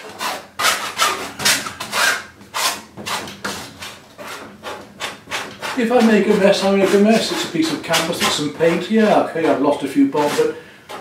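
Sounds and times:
knife scraping paint on canvas: 0:00.0 - 0:11.0.

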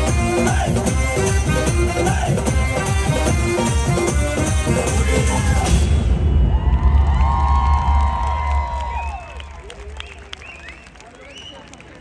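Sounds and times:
dance music with heavy bass: 0:00.0 - 0:05.8
audience cheering and whooping: 0:05.2 - 0:11.0.

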